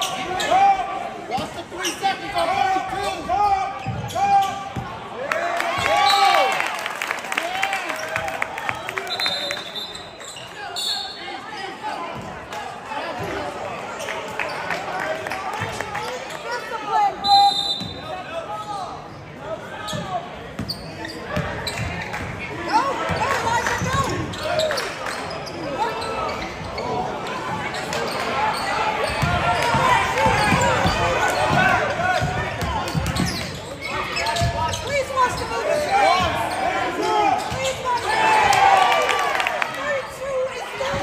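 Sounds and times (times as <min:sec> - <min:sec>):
people shouting and chattering: 0:00.0 - 0:41.0.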